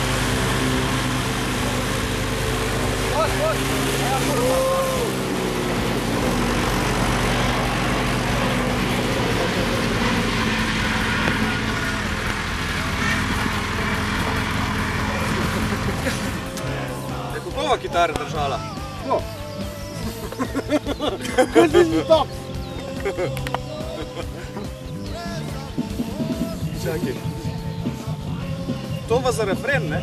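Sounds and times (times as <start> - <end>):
tractor diesel engine running: 0.0 - 30.0.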